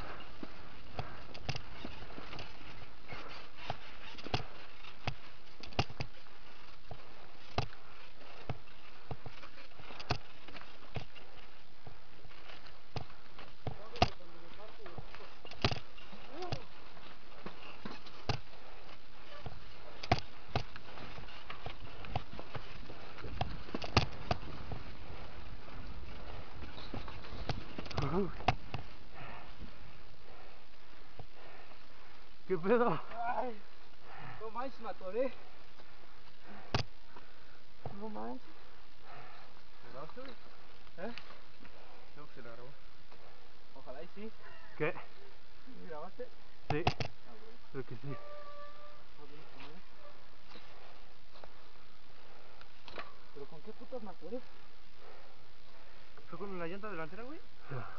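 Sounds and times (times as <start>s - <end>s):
bike clacking and rattling: 0.0s - 11.6s, 12.3s - 29.0s.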